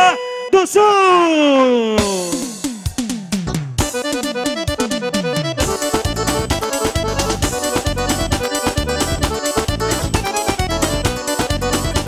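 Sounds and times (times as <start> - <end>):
accordion-like keyboard lead: 0.0 - 12.0
live band playing: 1.9 - 12.0
bass and drum beat: 2.0 - 12.0.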